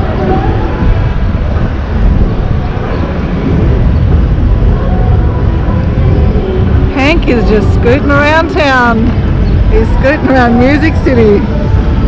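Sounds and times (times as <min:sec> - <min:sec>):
low rumbling city noise: 0:00.0 - 0:12.0.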